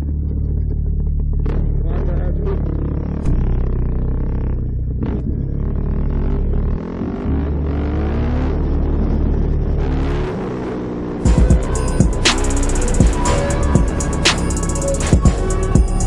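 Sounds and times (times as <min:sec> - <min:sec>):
dirt bike engine revving: 0:06.1 - 0:16.0.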